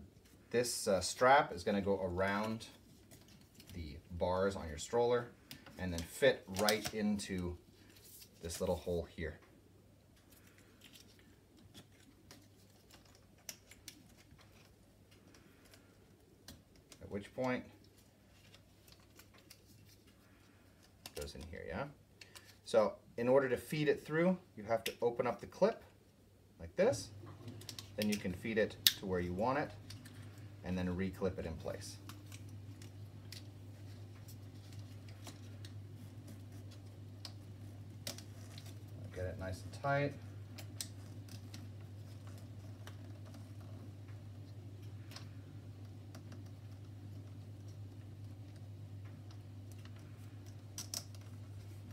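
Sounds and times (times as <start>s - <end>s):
steady low hum: 0.0s - 51.9s.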